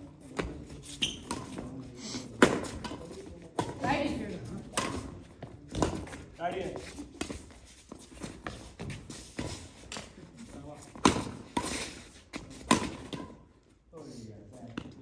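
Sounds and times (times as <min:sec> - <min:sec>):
rackets hitting shuttlecock: 0:02.3 - 0:06.2, 0:10.9 - 0:13.4.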